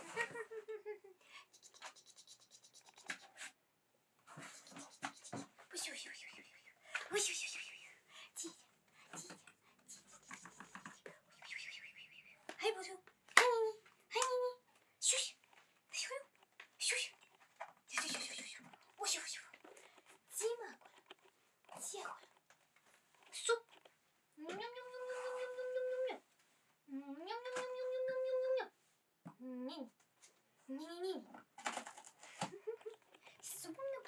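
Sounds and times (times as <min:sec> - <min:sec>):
person whispering: 0:01.3 - 0:03.5, 0:04.3 - 0:12.9, 0:15.0 - 0:17.2, 0:17.9 - 0:21.1, 0:21.7 - 0:22.4, 0:23.3 - 0:23.6, 0:24.4 - 0:26.2, 0:33.1 - 0:34.0
short voiced syllable: 0:24.4 - 0:26.2.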